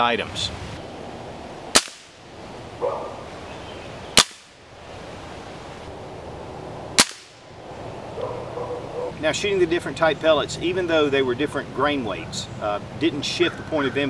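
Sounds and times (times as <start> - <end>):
air rifle shots: 1.7 - 2.2, 4.2 - 4.6, 7.0 - 7.4.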